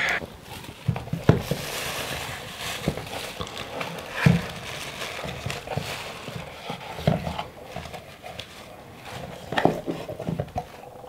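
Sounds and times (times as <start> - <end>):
cardboard flaps scraping and rustling: 0.2 - 10.9.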